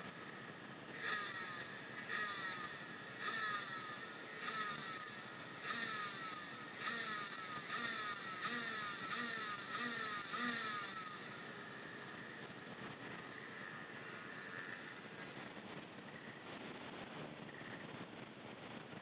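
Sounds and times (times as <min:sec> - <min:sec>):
motorcycle engines revving: 0:00.0 - 0:19.0.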